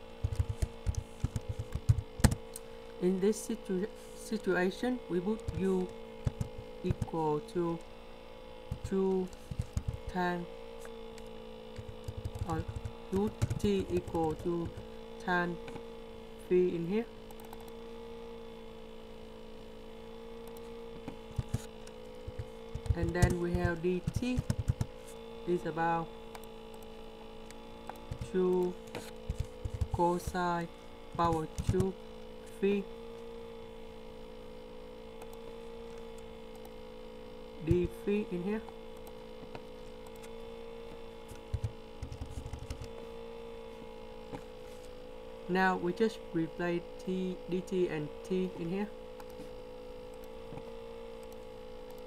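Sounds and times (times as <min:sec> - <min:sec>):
steady electrical hum: 0:00.0 - 0:52.0
soft typing clicks: 0:17.3 - 0:17.8.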